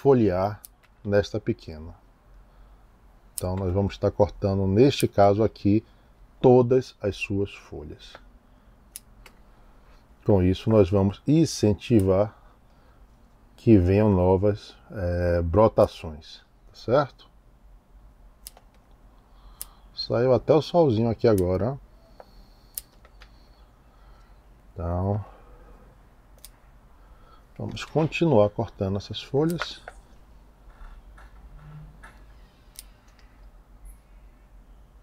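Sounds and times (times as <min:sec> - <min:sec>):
pruning shears clicking: 0:18.4 - 0:18.8, 0:26.4 - 0:26.6, 0:29.4 - 0:29.9.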